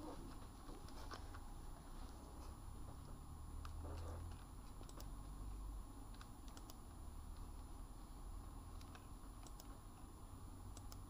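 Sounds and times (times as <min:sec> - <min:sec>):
soft clicks: 0:03.6 - 0:05.4, 0:06.1 - 0:07.7, 0:08.7 - 0:10.1, 0:10.7 - 0:11.0.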